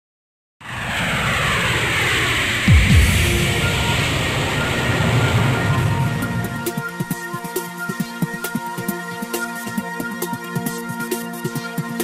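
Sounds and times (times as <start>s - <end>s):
jet airliner engine roar: 0.6s - 7.7s
deep falling booms: 0.7s - 6.7s.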